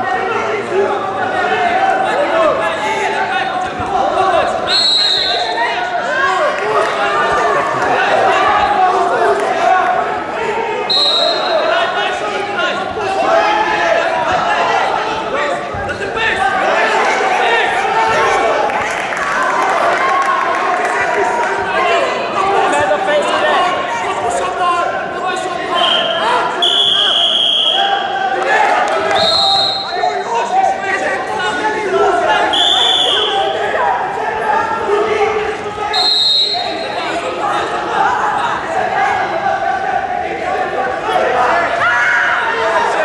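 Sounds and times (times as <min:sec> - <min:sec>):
crowd chatter: 0:00.0 - 0:43.0
echoing indistinct voices: 0:00.0 - 0:43.0
referee's whistle blasts: 0:04.7 - 0:05.6, 0:10.9 - 0:11.7, 0:25.8 - 0:27.9, 0:29.1 - 0:30.1, 0:32.5 - 0:33.6, 0:35.9 - 0:37.0.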